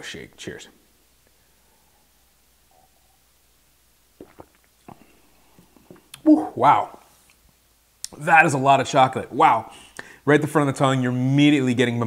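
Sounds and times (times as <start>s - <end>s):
sip from a glass: 4.1s - 6.2s
soft gulps: 4.1s - 7.1s
mouth clicks: 4.2s - 7.4s.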